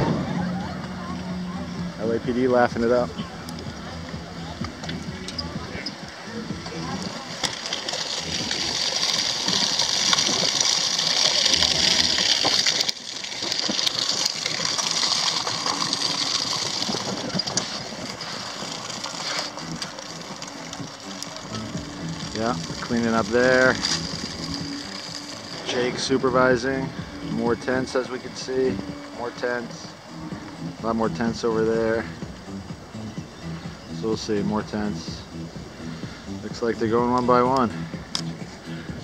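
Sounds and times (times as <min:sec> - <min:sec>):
wind rushing on microphone: 0:14.0 - 0:19.2.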